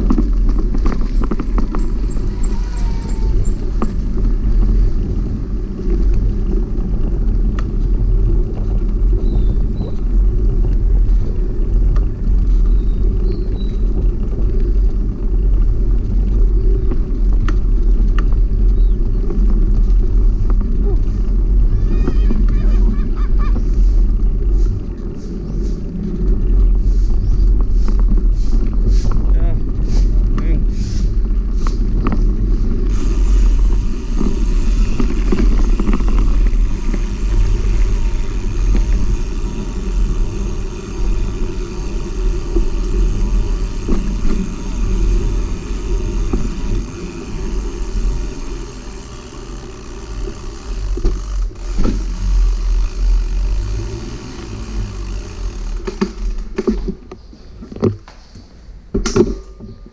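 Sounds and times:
motorcycle engine running: 0.0s - 57.0s
wind rumble on microphone: 0.0s - 58.0s.

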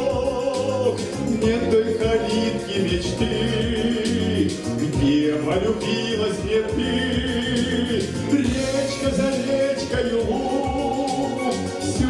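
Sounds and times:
instrumental accompaniment with beat: 0.0s - 12.0s
man singing into microphone: 0.0s - 12.0s.

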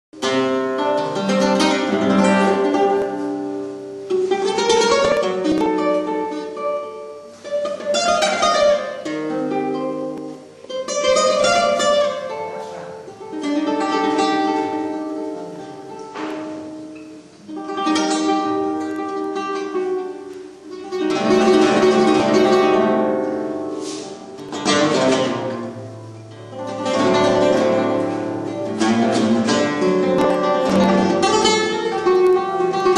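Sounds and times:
flamenco guitar playing: 0.2s - 32.9s.

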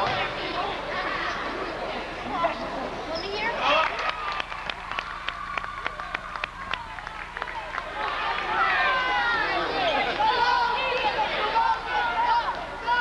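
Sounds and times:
crowd and players calling out: 0.0s - 13.0s.

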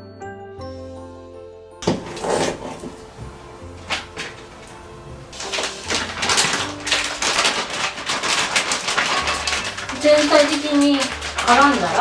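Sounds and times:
plastic bag crinkling: 1.9s - 12.0s.

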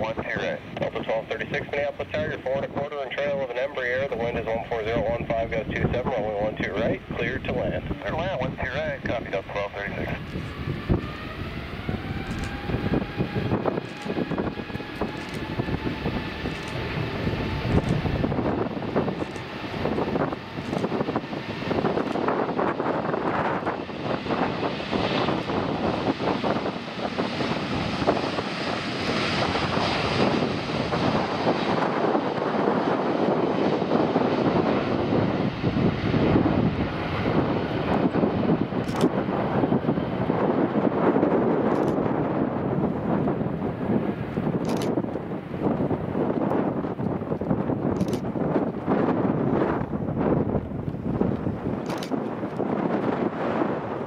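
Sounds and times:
jet engine roar: 0.0s - 54.0s
jet engine whine: 0.0s - 54.0s.

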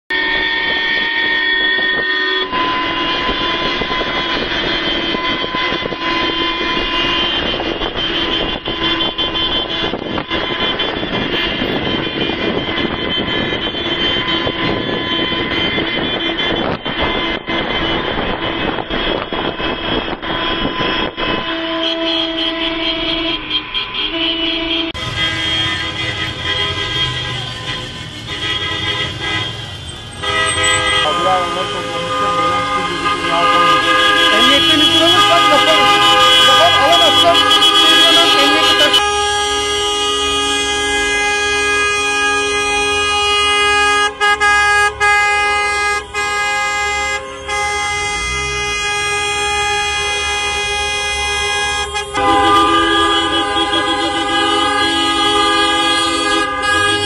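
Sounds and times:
car horns honking: 0.1s - 57.0s
traffic noise: 0.1s - 57.0s.

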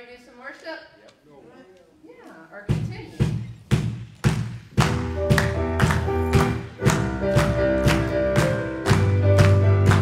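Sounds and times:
steady drum beat: 2.6s - 10.0s
keyboard and bass chords: 4.8s - 10.0s.

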